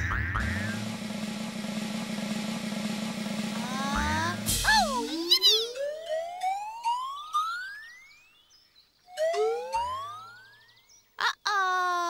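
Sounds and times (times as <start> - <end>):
steady low buzzing note: 0.6 - 5.0.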